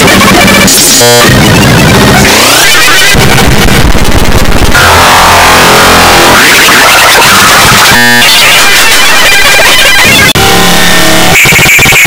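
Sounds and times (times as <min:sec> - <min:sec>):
distorted loud noise and music: 0:00.0 - 0:12.0
harsh buzzing tone: 0:00.0 - 0:12.0.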